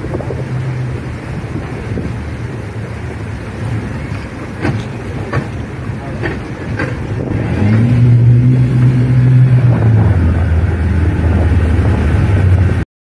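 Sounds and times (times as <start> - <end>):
outboard engines running: 0.0 - 12.8
wind on microphone: 0.0 - 12.8.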